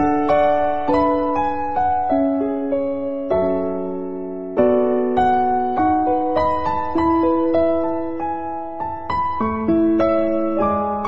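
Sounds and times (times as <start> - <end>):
gentle piano music: 0.0 - 11.0.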